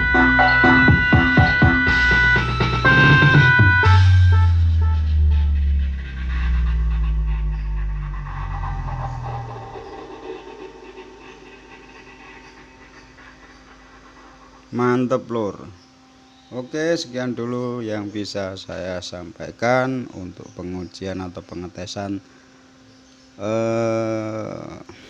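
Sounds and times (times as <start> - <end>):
drum beat music: 0.0 - 7.6
long deep bass notes: 0.0 - 13.5
faint steady hum: 0.0 - 25.0.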